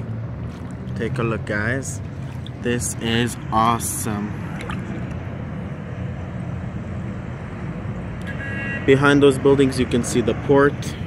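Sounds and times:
city traffic hum: 0:00.0 - 0:11.0.

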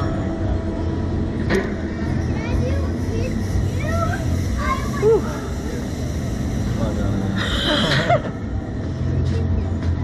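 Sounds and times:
low mechanical drone: 0:00.0 - 0:10.0.

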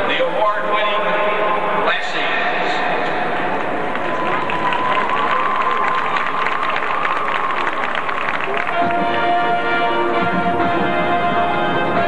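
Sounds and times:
echoing public-address voice: 0:00.0 - 0:04.3
stadium crowd murmur: 0:00.0 - 0:12.0.

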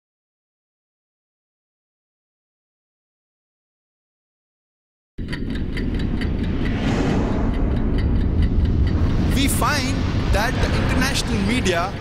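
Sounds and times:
deep steady rumble: 0:05.2 - 0:12.0
fast ticking: 0:05.2 - 0:12.0
person speaking: 0:09.2 - 0:12.0.

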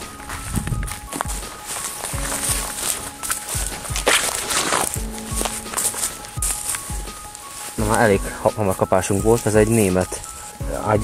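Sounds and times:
background music with beat: 0:00.0 - 0:11.0
footsteps through grass and leaves: 0:00.0 - 0:11.0
leaves rustling: 0:00.0 - 0:11.0.

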